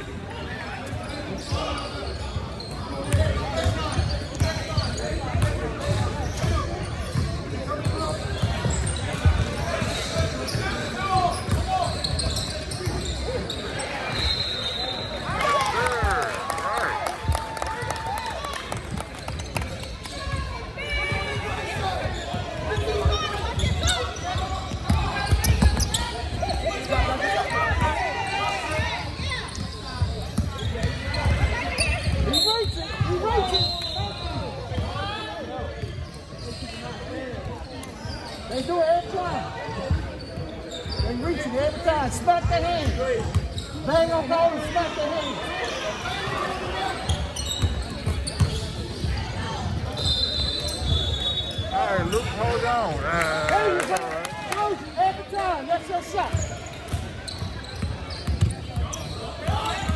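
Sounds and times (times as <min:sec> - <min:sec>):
shouting and chatter in echoing hall: 0:00.0 - 0:59.9.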